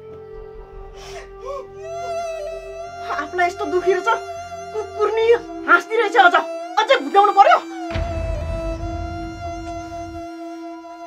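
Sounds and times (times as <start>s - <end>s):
held note of background music: 0.0s - 11.0s.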